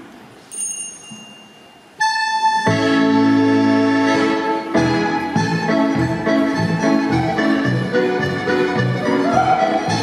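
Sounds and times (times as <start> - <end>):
country dance music: 2.0 - 10.0.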